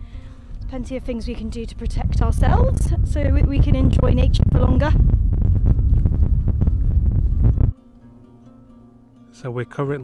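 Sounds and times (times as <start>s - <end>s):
faint steady hum: 0.0s - 7.8s
wind buffeting microphone: 0.5s - 7.7s.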